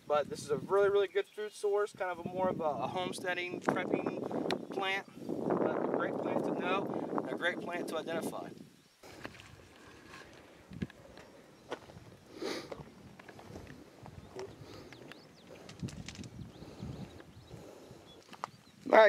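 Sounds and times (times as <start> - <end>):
faint outdoor background: 0.0 - 19.0.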